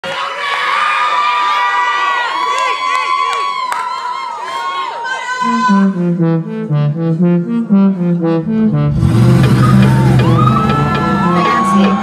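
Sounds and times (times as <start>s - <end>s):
audience cheering and screaming: 9.4s - 12.0s.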